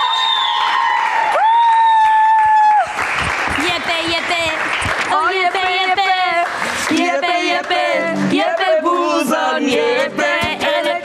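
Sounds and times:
audience applause: 0:00.0 - 0:07.8.

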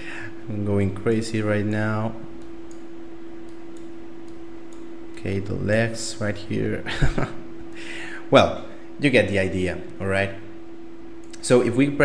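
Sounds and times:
steady hum with hiss: 0:00.0 - 0:12.0.

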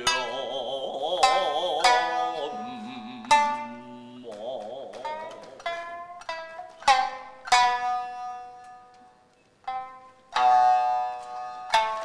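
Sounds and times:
shamisen plucked notes: 0:00.0 - 0:12.0.

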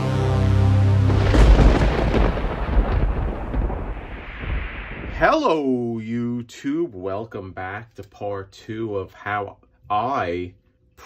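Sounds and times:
rolling thunder rumble: 0:01.1 - 0:05.4.

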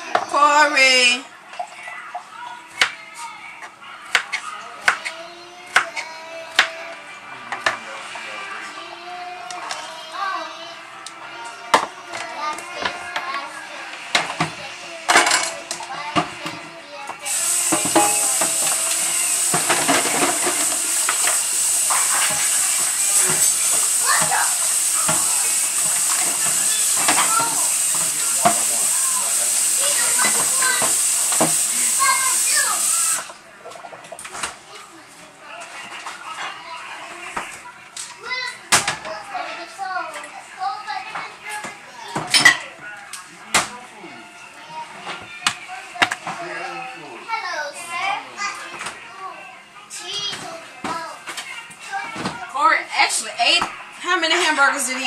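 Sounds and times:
tap water running: 0:17.2 - 0:34.3
kitchen clatter and knocks: 0:17.3 - 0:28.8, 0:30.1 - 0:31.7, 0:42.1 - 0:42.7.

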